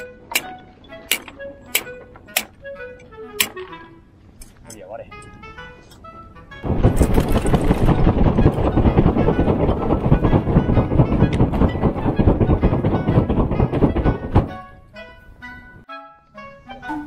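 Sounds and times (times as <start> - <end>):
hand fan gusts buffeting microphone: 6.6 - 14.9.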